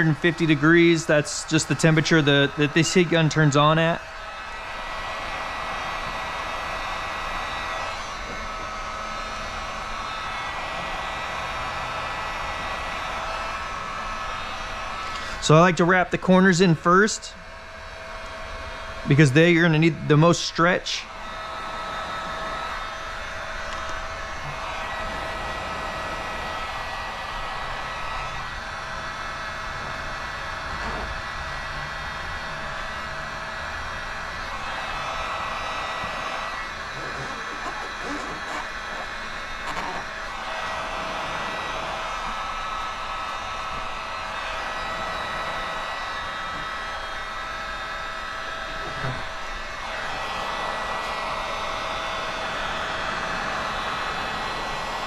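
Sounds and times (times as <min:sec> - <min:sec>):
heat gun blowing: 0:00.0 - 0:55.0.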